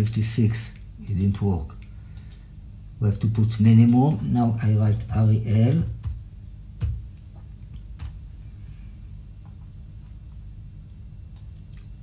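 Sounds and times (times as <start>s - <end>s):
low hum: 0.0s - 12.0s
computer clicks: 1.7s - 2.4s.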